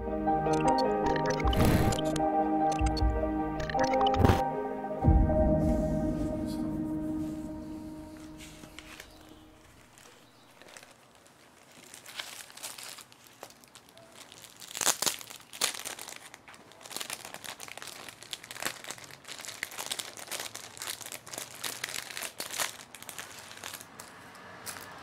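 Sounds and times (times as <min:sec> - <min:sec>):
paper sheets rustling: 0:08.4 - 0:13.7.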